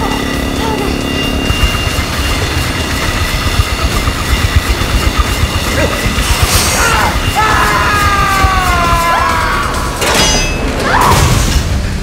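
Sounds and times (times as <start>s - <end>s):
motorcycle engine running hard: 0.0s - 8.0s.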